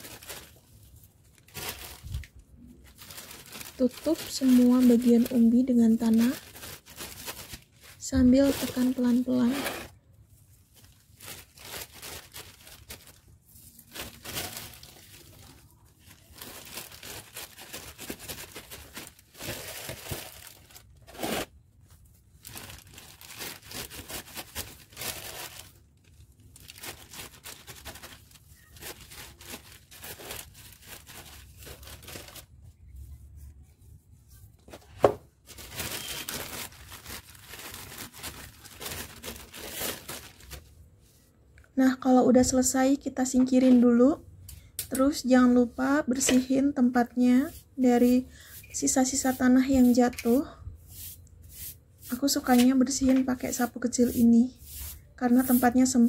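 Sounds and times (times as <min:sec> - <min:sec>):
soil and leaves rustling: 0:00.0 - 0:09.8, 0:35.5 - 0:40.6.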